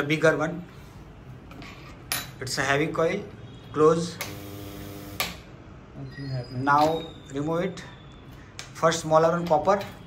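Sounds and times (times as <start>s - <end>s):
electric coil humming: 4.2s - 5.4s.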